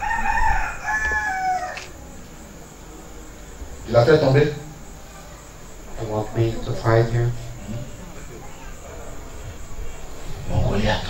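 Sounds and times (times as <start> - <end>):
rooster crowing: 0.0 - 2.2.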